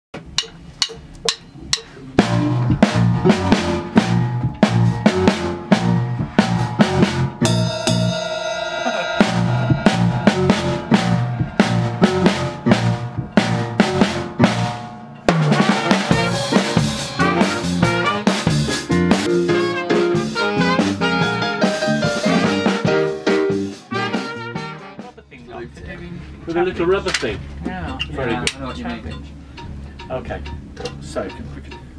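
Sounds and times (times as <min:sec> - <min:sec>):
band rehearsing with horns: 0:01.8 - 0:25.2
horns holding long chord: 0:02.2 - 0:25.1.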